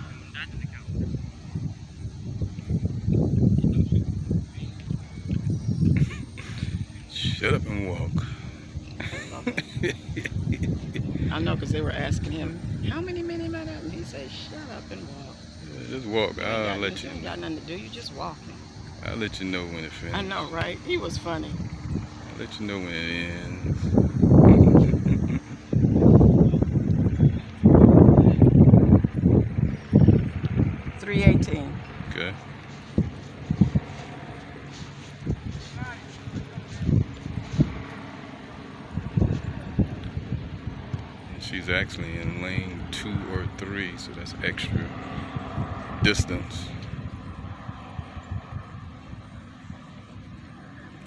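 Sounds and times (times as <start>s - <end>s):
wind buffeting microphone: 0.0s - 51.0s.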